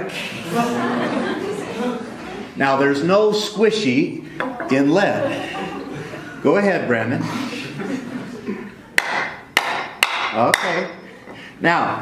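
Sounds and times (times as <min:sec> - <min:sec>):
hammer striking nail into wood: 0:09.0 - 0:10.8.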